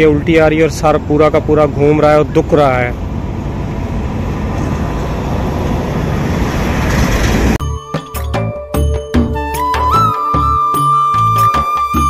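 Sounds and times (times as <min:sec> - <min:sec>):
traffic rumble: 0:00.0 - 0:07.6.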